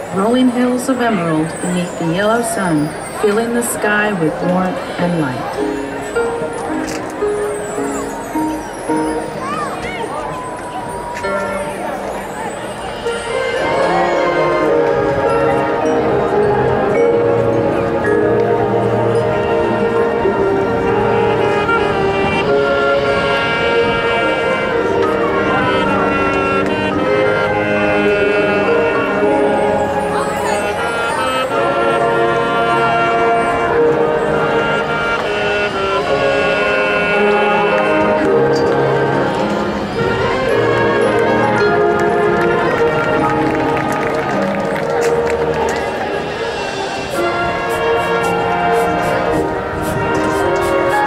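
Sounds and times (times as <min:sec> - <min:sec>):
marching band brass chords: 0:00.0 - 0:09.6, 0:10.3 - 0:51.0.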